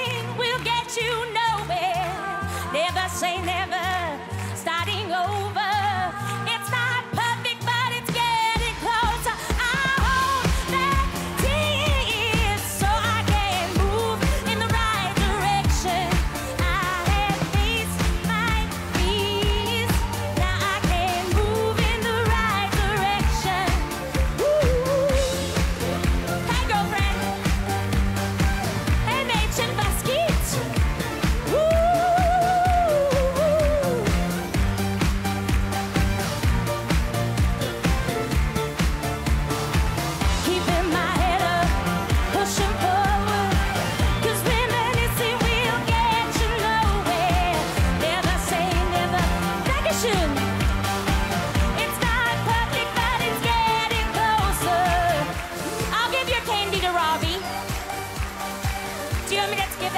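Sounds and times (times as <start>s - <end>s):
woman singing with vibrato: 0.0s - 27.9s, 28.8s - 34.7s, 40.2s - 58.2s, 59.1s - 59.9s
steady drum beat: 8.0s - 59.9s.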